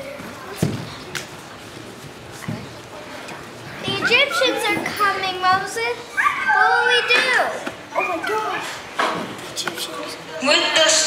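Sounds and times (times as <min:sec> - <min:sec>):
children talking and calling out: 0:00.0 - 0:09.0.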